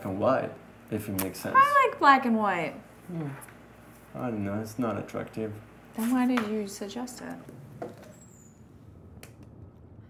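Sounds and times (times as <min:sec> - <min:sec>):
faint low rumble: 0:07.0 - 0:10.0.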